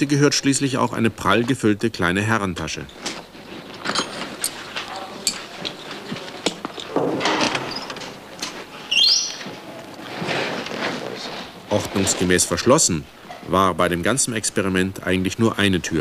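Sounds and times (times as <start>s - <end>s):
handling and rummaging noises: 2.8s - 13.5s
clicks and knocks: 3.0s - 8.8s
cupboard door opening with squeak: 6.8s - 9.6s.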